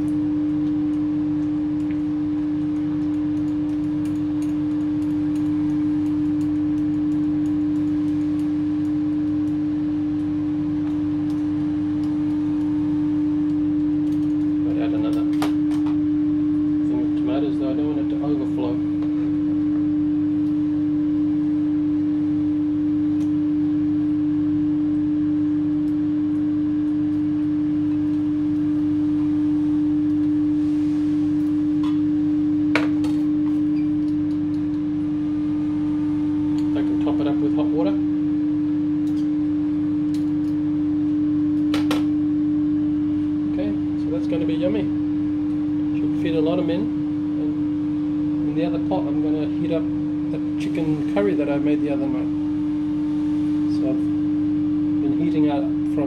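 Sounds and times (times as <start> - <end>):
loud steady hum: 0.0 - 56.0.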